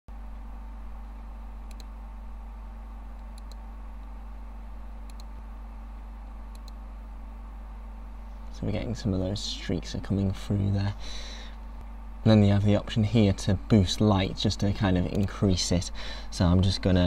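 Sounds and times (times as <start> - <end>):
low electrical hum: 0.1 - 17.0.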